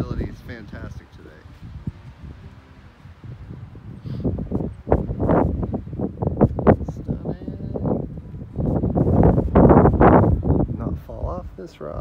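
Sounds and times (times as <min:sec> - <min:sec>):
wind gusting across microphone: 0:00.0 - 0:12.0.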